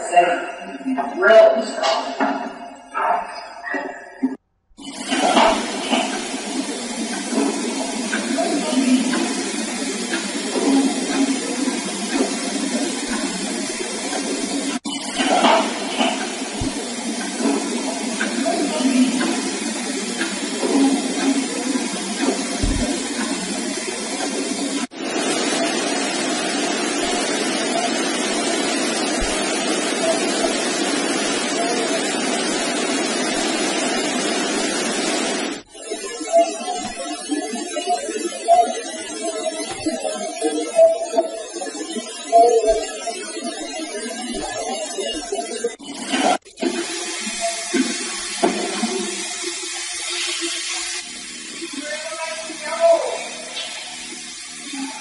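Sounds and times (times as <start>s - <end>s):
loud steady hiss: 4.8s - 35.7s, 46.2s - 55.0s.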